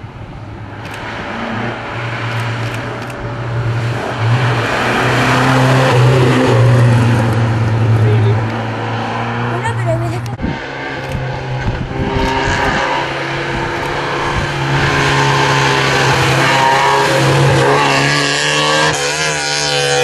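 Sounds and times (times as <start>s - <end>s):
rally car engines revving: 0.2s - 20.0s.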